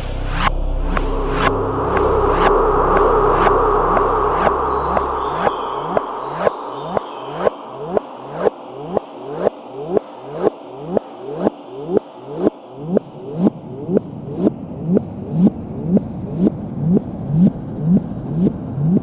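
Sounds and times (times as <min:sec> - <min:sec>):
deep bass rumble: 0:00.0 - 0:10.0, 0:12.7 - 0:19.0
electronic trance music: 0:00.0 - 0:19.0
synth layers: 0:00.0 - 0:19.0.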